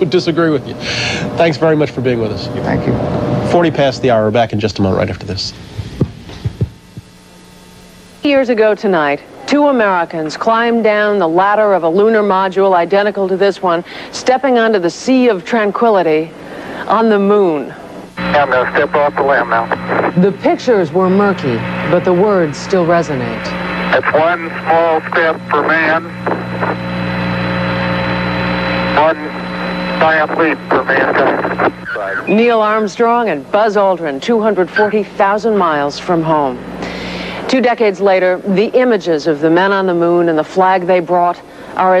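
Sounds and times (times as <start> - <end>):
electrical hum with hiss: 0.0 - 42.0
low thumps: 5.7 - 7.2
voice over radio: 18.2 - 26.8, 28.9 - 32.6, 34.6 - 35.2.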